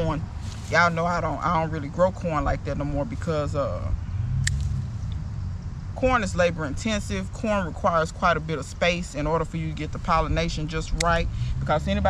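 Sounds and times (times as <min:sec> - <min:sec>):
low rumble: 0:00.0 - 0:07.2
scissors snipping stems: 0:04.4 - 0:04.8, 0:10.9 - 0:11.2.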